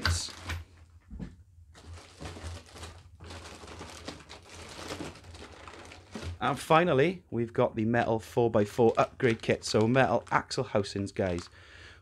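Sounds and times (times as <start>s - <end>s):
plastic bags crinkling: 0.0s - 0.9s, 1.7s - 6.8s, 8.5s - 11.6s.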